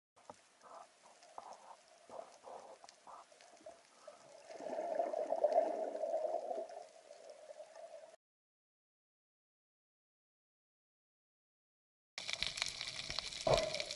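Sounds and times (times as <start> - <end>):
muffled underwater swishes: 0.8 - 8.2
underwater rush of water: 1.0 - 8.2, 12.2 - 13.9.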